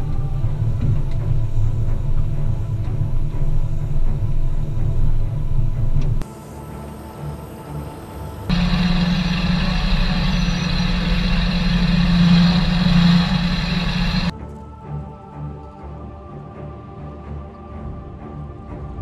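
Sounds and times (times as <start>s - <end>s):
ominous music with low drone: 0.0s - 19.0s
truck engine rumbling: 8.5s - 14.3s.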